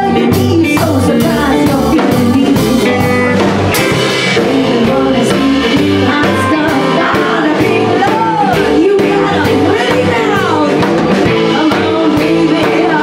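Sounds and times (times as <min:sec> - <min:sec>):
drum kit beat with cymbals: 0:00.0 - 0:13.0
electric bass: 0:00.0 - 0:13.0
woman singing: 0:00.0 - 0:13.0.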